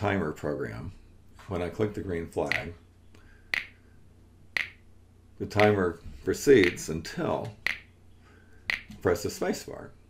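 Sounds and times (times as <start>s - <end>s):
recorded finger snaps: 2.5s - 2.7s, 3.5s - 3.8s, 4.6s - 4.8s, 5.6s - 5.8s, 6.6s - 6.8s, 7.6s - 7.9s, 8.7s - 9.0s.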